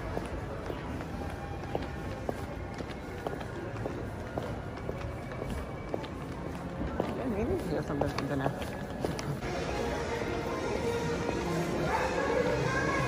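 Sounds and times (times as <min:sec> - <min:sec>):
footsteps on tiled floor: 0:00.0 - 0:13.0
indoor crowd hubbub: 0:00.0 - 0:13.0
background music: 0:09.4 - 0:13.0.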